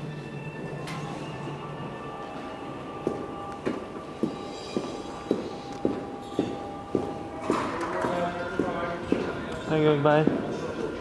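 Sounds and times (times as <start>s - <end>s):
footsteps on stone floor: 3.0s - 10.9s.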